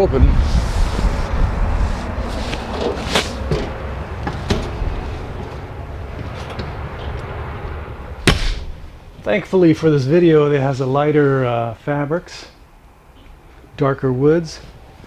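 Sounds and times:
low microphone rumble: 0.0 - 10.9
footsteps on steps: 2.3 - 7.2.

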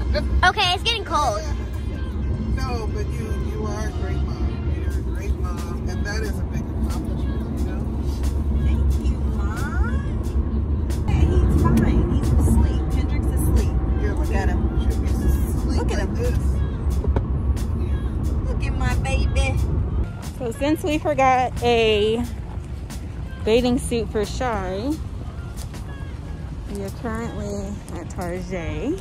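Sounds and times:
music: 0.0 - 29.0
road and engine rumble: 0.0 - 29.0
voices: 0.0 - 29.0.

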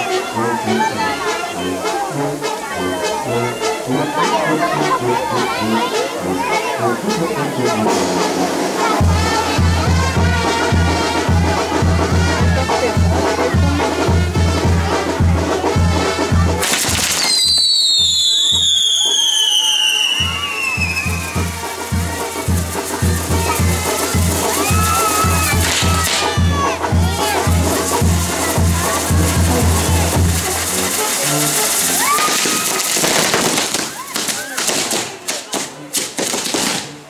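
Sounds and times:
voices: 0.0 - 36.1
firework fountains hissing and crackling: 0.0 - 37.0
firework falling whistle: 16.6 - 26.4, 30.0 - 34.0.

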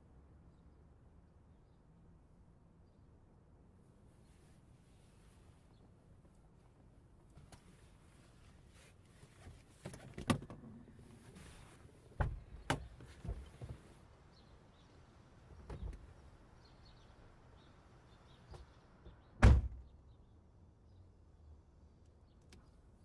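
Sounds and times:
car door thud: 19.4 - 19.8.

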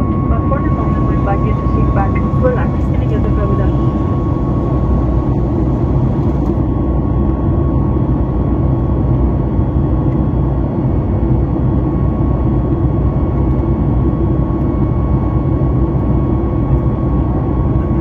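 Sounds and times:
aircraft cabin engine rush: 0.0 - 18.0
faint steady whine: 0.0 - 18.0.

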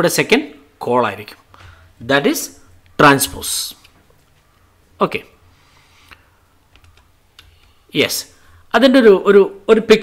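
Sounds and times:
computer keys clicking: 6.7 - 7.8.

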